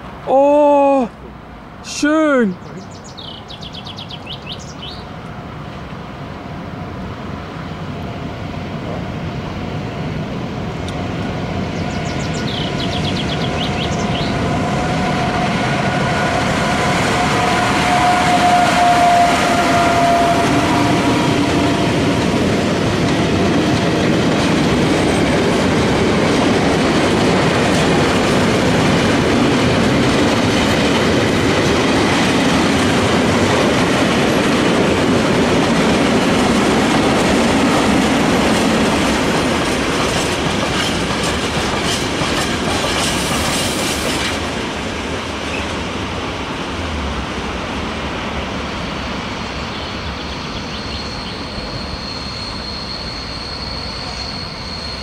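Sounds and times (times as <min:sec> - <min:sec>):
train wheels rumbling on rails: 0:02.8 - 0:55.0
clickety-clack over rail joints: 0:10.8 - 0:47.9.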